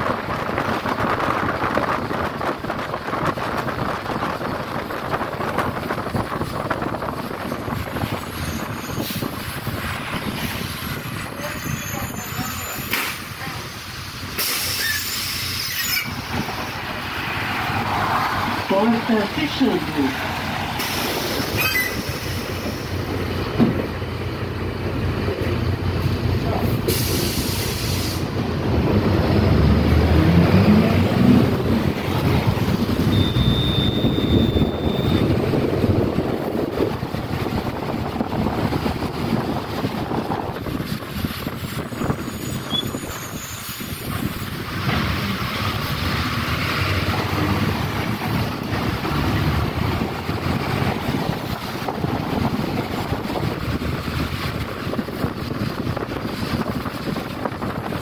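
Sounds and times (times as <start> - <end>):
bus body rattling: 0.0 - 17.9, 18.5 - 29.4, 30.5 - 58.0
bus engine running: 0.0 - 58.0
tyres rumbling on road: 0.0 - 58.0
brief high squeal: 11.5 - 13.0, 14.4 - 16.2, 21.5 - 22.3, 33.1 - 35.2, 42.4 - 43.7
short hiss: 14.4 - 16.1.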